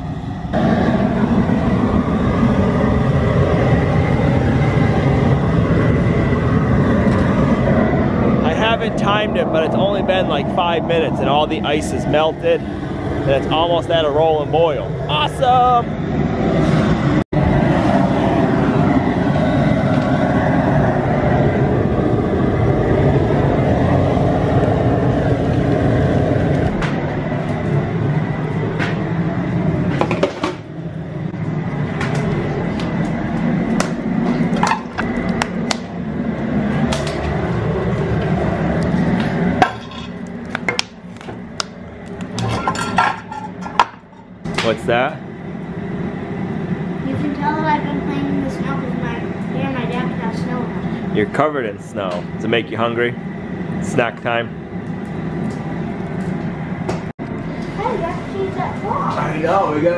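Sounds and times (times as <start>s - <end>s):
propane burner rushing: 0.0s - 59.9s.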